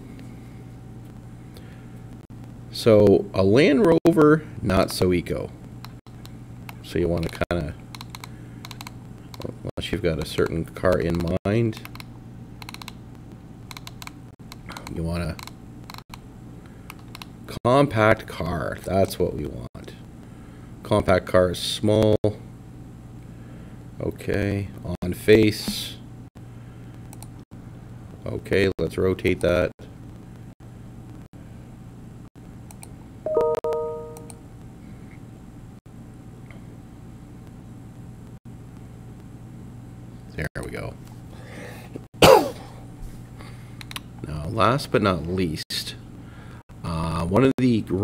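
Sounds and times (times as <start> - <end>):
low steady hum: 0.0 - 48.0
faint clicks: 27.1 - 27.4
chime: 33.3 - 34.3
keyboard keys tapping: 33.3 - 34.3.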